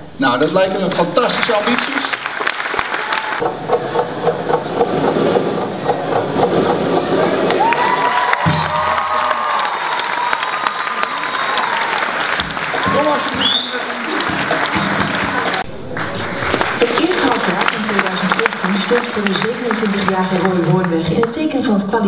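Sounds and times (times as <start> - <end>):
audience applause and cheering: 1.2 - 21.4.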